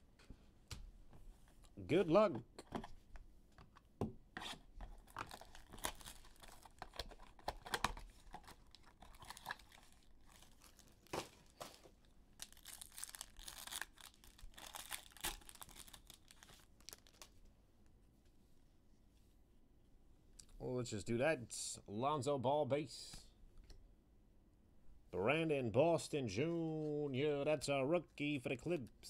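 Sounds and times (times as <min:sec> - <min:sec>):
cards and card box rustling: 0:04.5 - 0:17.3
foil wrapper tearing and crinkling: 0:05.0 - 0:11.6, 0:12.4 - 0:17.4.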